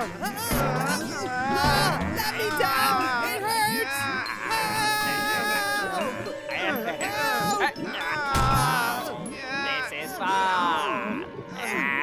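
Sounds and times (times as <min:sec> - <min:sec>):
cartoon man singing wavering notes: 0:00.0 - 0:12.0.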